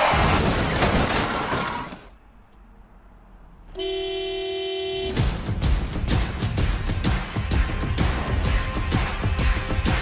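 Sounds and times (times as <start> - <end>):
cars crashing: 0.0 - 2.2
car horn long note: 3.7 - 5.2
music: 5.1 - 10.0.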